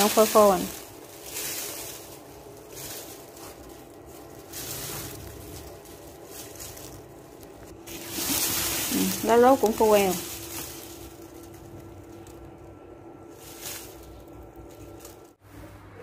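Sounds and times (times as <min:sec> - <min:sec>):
dry leaves rustling in plastic sack: 0:00.0 - 0:15.4.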